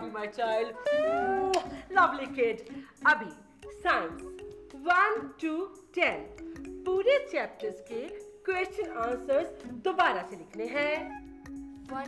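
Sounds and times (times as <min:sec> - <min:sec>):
woman humming: 0:00.7 - 0:01.9
kiss lip smack: 0:00.8 - 0:01.7.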